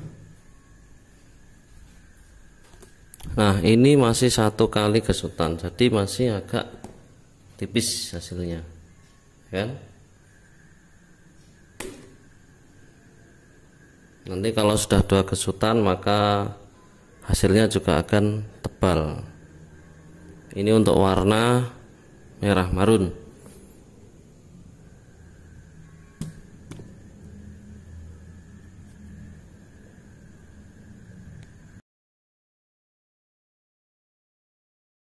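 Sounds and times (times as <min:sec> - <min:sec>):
low room hum: 0:00.0 - 0:31.8.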